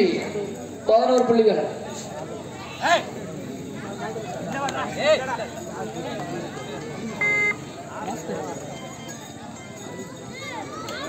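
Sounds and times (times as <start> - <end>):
crowd voices: 0.0 - 11.0
short electronic beep: 7.2 - 7.6.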